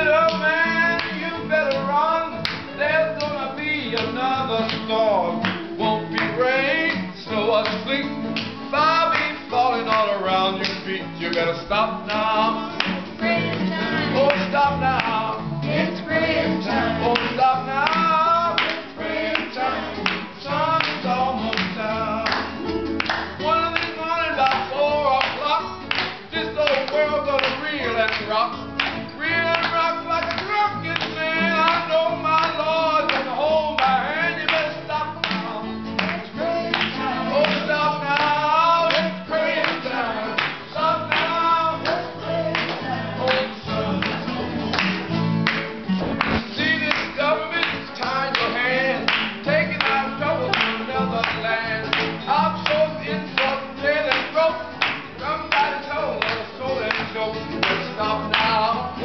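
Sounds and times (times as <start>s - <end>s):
voices singing along: 0.0s - 28.4s, 29.0s - 45.1s, 45.8s - 59.0s
acoustic guitars and bass playing: 0.0s - 59.0s
hands clapping on the beat: 0.0s - 59.0s.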